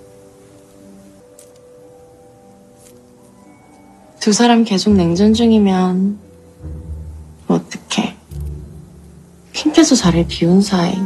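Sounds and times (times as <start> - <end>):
low steady hum: 4.7 - 11.0.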